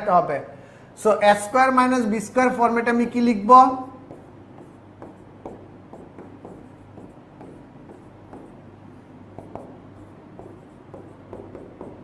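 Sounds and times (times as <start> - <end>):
low steady hum: 0.0 - 12.0
marker squeaking on whiteboard: 3.9 - 8.7, 9.3 - 12.0.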